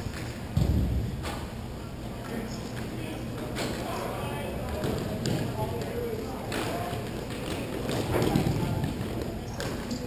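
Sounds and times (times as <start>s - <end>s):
distant players' voices: 0.0s - 10.0s.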